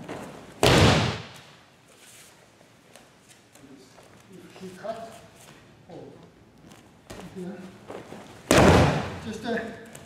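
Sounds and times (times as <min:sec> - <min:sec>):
body slamming onto mat: 0:00.0 - 0:01.4, 0:08.4 - 0:09.2.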